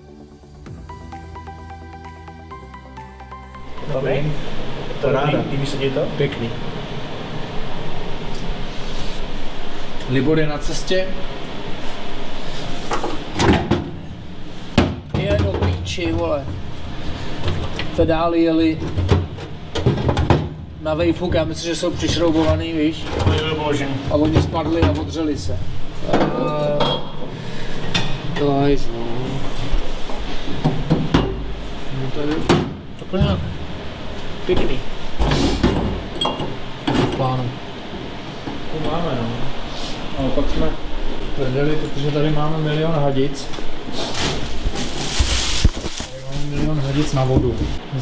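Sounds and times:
steady background noise: 0.0 - 48.0
voice: 3.8 - 4.4, 5.0 - 6.6, 10.0 - 11.3, 15.1 - 16.6, 18.0 - 19.0, 20.8 - 27.0, 31.9 - 33.5, 34.5 - 34.9, 36.9 - 37.6, 38.7 - 39.5, 46.1 - 48.0.

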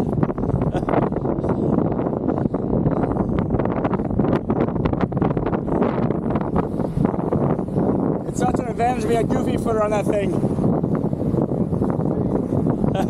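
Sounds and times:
wheels rolling on sand: 0.0 - 13.0
wind buffeting microphone: 0.0 - 13.0.

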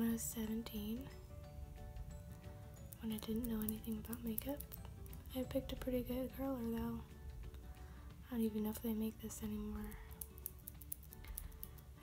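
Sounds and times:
faint background music: 0.0 - 12.0
eyelash curler clicking: 2.8 - 5.5, 9.8 - 12.0.

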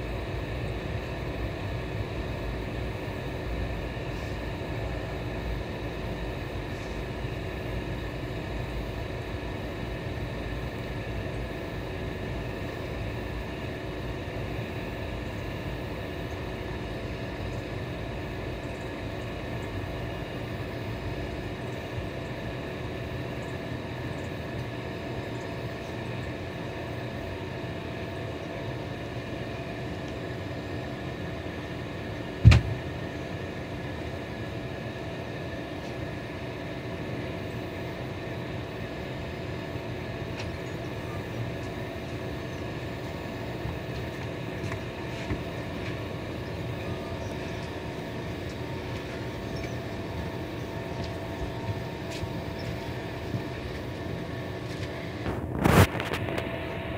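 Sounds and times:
sharp loud thump: 32.4 - 32.8.

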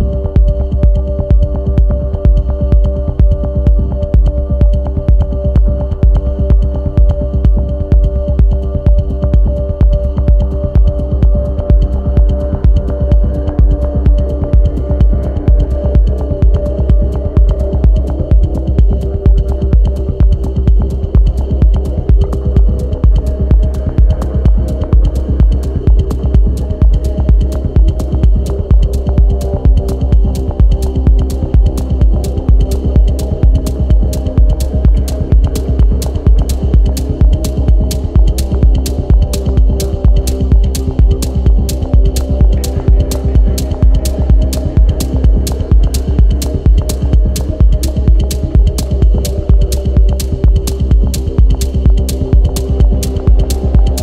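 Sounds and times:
techno kick drum: 0.0 - 54.0
synth chords: 8.4 - 54.0
hi-hat ticks: 17.4 - 54.0.

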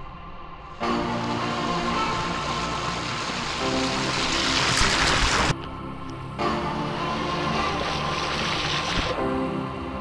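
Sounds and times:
background music: 0.0 - 10.0
stream water rushing: 1.3 - 9.4.

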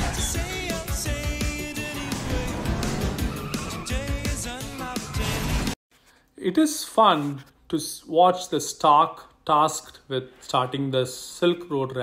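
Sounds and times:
music: 0.0 - 5.8
tyres skidding: 1.5 - 5.7
cartoon car engine: 1.7 - 5.7.

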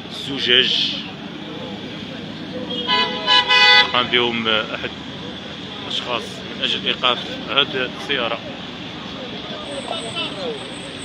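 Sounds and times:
street traffic: 0.0 - 11.0
car horn honking: 2.7 - 4.2.

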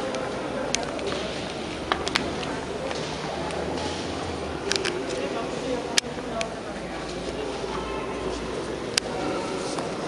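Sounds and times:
crowd chatter echoing: 0.0 - 10.0.

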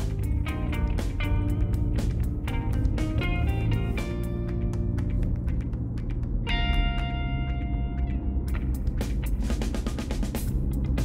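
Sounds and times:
held chords ringing: 0.0 - 5.4, 6.2 - 9.1
steady low rumble: 0.0 - 11.0.

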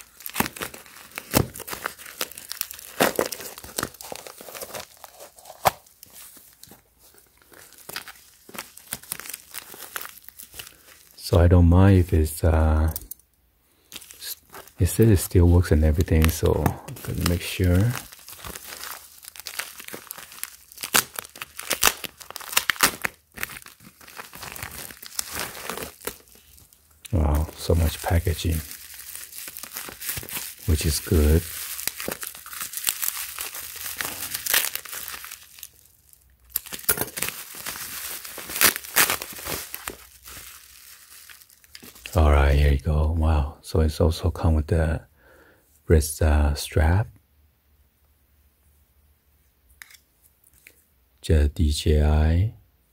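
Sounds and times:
bubble wrap crinkling: 0.0 - 11.4, 13.8 - 42.8
scissors cutting plastic bag: 15.9 - 26.6, 27.2 - 35.7, 36.5 - 42.1.

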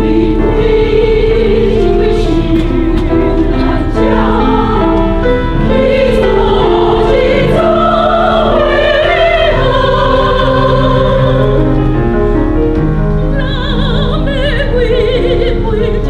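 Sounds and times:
mixed choir singing: 0.0 - 12.1.

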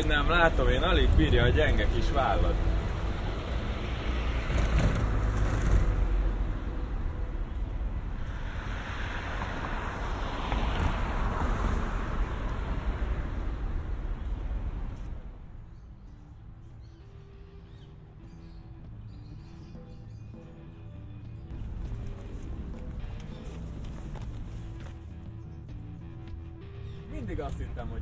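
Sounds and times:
cars passing on street: 0.0 - 28.0.

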